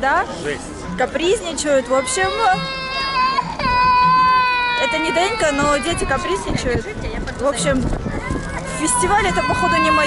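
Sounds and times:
young child crying: 2.0 - 6.6, 8.4 - 10.0.

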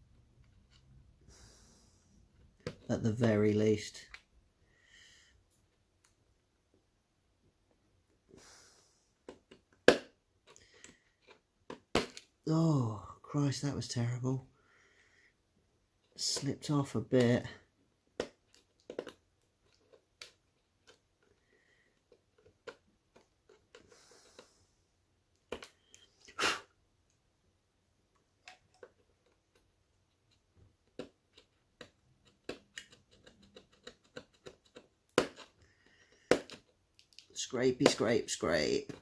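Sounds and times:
person exhaling whew: 26.2 - 26.7
knife scraping plastic: 29.0 - 36.8.

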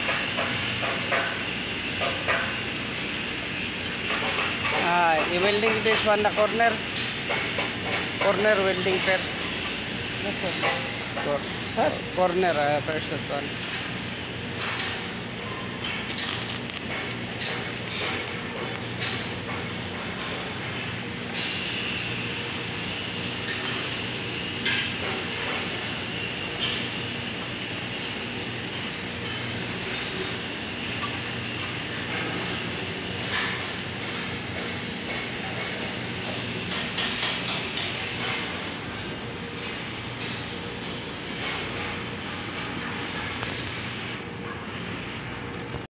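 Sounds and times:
workshop machinery hum: 0.0 - 45.9.

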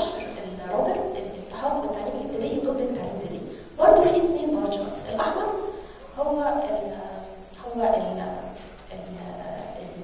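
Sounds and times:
person speaking: 0.0 - 10.0.

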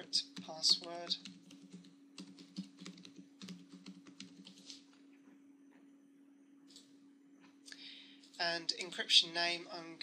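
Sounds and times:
faint steady hum: 0.0 - 10.0
keyboard typing: 0.2 - 4.8.

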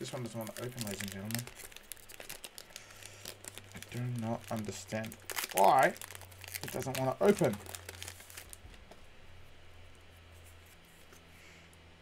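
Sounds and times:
foil wrapper crinkling and tearing: 0.0 - 8.6
low steady hum: 0.0 - 12.0.

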